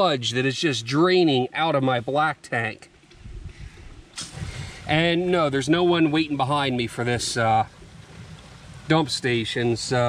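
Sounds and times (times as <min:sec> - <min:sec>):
short hiss: 0:03.6 - 0:05.0
waste water draining through hose: 0:04.1 - 0:10.0.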